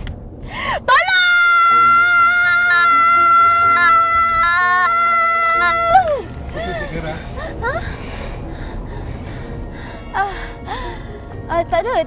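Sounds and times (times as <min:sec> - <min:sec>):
woman screaming: 0:00.9 - 0:06.3
quiet background music: 0:01.0 - 0:12.0.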